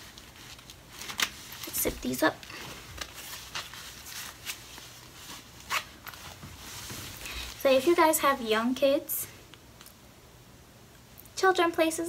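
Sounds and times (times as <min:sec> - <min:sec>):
sandal rustling and scuffing: 0:03.0 - 0:07.9.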